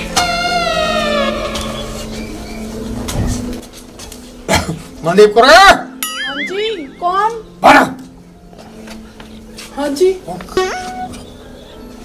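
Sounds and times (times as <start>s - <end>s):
warbling whistle-like tone: 6.0s - 7.2s.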